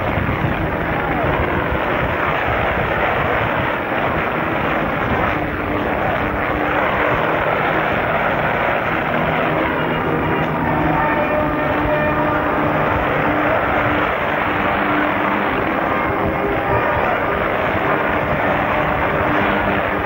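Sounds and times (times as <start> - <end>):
wind rushing over microphone: 0.0 - 20.0
music in short held notes: 0.6 - 20.0.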